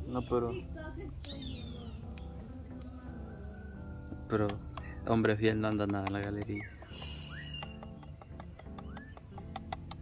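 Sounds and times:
quiet background music: 0:00.0 - 0:10.0.

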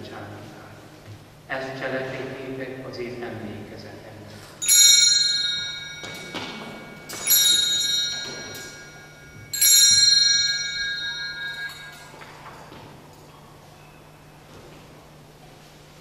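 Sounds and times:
altar bells ringing: 0:04.6 - 0:14.4.

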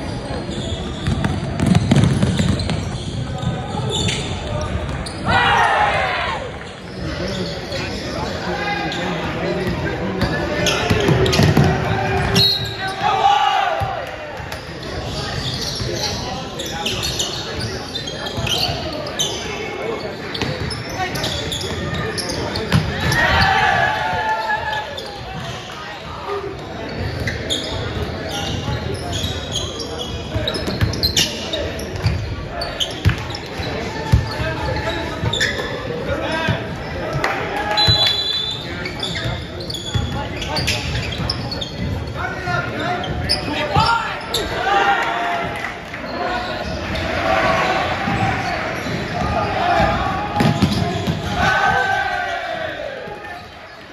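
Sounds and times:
people shouting in echoing hall: 0:05.2 - 0:06.6, 0:11.4 - 0:14.4, 0:22.9 - 0:25.1, 0:42.2 - 0:53.4.

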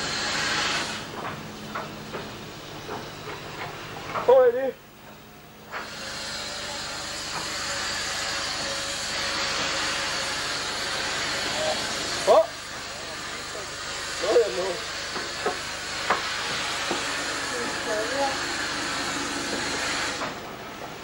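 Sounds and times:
steam locomotive hissing steam: 0:00.0 - 0:04.7, 0:05.7 - 0:21.0.

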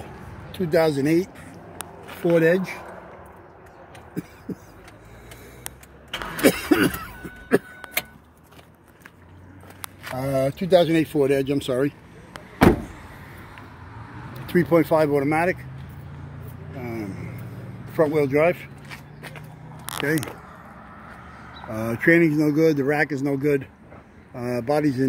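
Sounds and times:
man coughing: 0:06.4 - 0:07.8.

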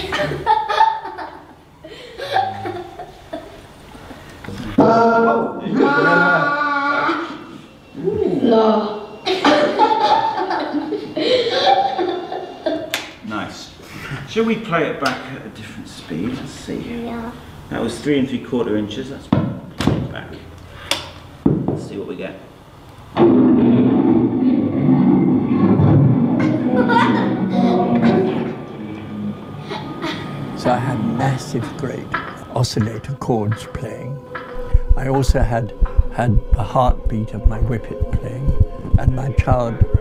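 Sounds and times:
choir singing sustained notes: 0:26.4 - 0:40.0
tape recorder playback muffled sound: 0:34.6 - 0:40.0.

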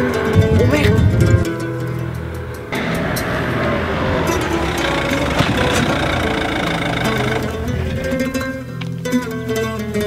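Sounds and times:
car engine running: 0:01.6 - 0:08.9.

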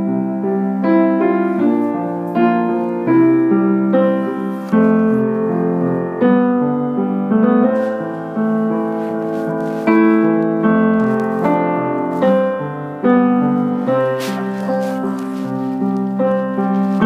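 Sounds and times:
piano chords: 0:00.0 - 0:17.0.

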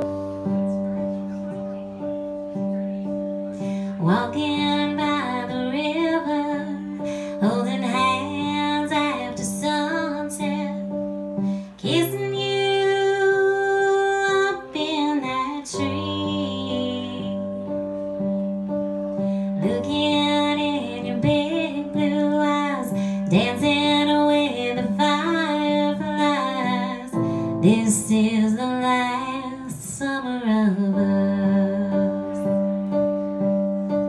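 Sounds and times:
electronic keyboard chords: 0:00.0 - 0:34.0
woman singing: 0:04.0 - 0:17.7, 0:19.5 - 0:32.9.

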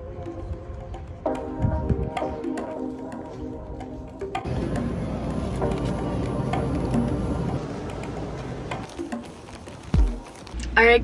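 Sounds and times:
supermarket background music: 0:00.0 - 0:11.0
store noise: 0:04.4 - 0:11.0
woman talking: 0:10.7 - 0:11.0.

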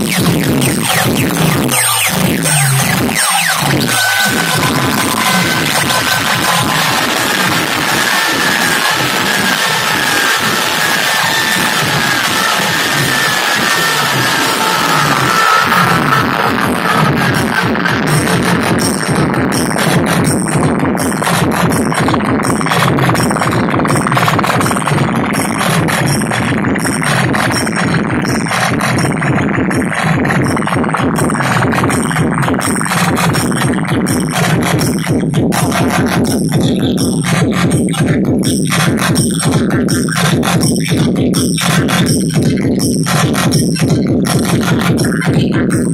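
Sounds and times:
electronic dance music: 0:00.0 - 0:45.9.

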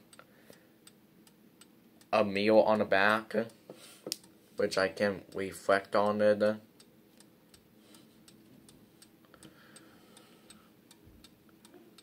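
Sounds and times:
mantel clock ticking: 0:00.0 - 0:12.0.

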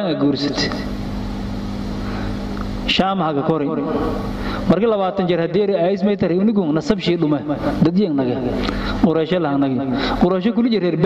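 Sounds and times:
low background hum: 0:00.0 - 0:11.0
man speaking: 0:02.9 - 0:11.0.

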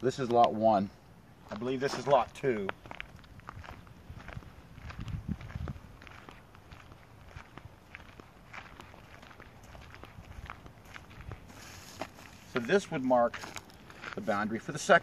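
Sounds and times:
footsteps on dry leaves: 0:01.5 - 0:15.0.

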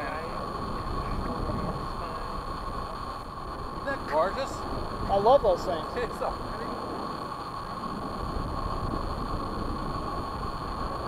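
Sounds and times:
thin steady whine: 0:00.0 - 0:11.0
wind buffeting microphone: 0:00.0 - 0:11.0.

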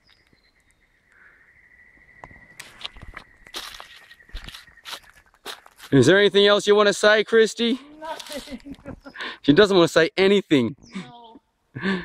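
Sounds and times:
footsteps crunching through leaves: 0:02.6 - 0:06.0, 0:07.9 - 0:09.1.

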